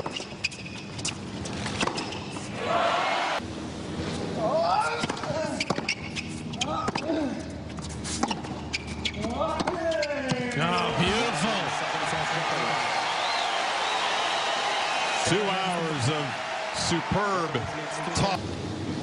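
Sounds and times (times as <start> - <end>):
rackets striking tennis ball: 1.6 - 2.5
ball bouncing on hard court: 5.0 - 6.0.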